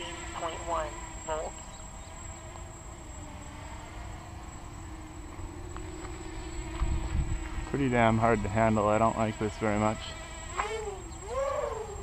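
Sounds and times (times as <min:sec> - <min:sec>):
distant drone propellers buzzing: 0:00.0 - 0:12.0
wind rumble on microphone: 0:05.4 - 0:08.8.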